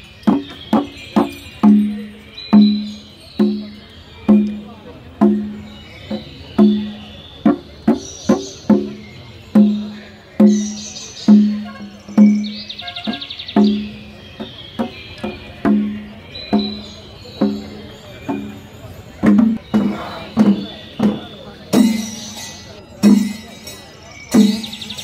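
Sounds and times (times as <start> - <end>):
drum beating low tone: 0.2 - 23.6.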